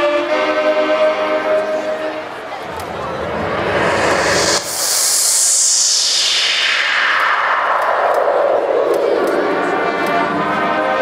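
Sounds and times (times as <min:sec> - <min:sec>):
electronic whoosh sweeping down: 0:02.6 - 0:10.4.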